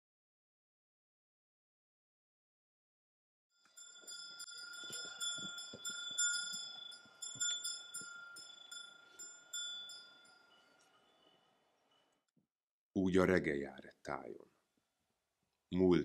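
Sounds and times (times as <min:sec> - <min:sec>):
small metal chimes ringing: 0:03.6 - 0:12.2.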